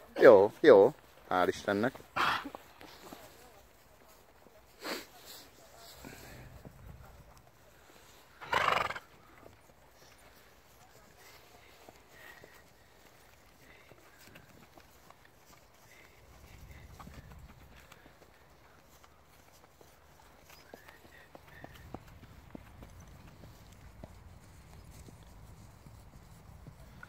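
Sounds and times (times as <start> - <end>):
hooves walking on grass and dirt: 0.0 - 27.0
horse whinnying: 2.2 - 2.6, 8.4 - 9.1.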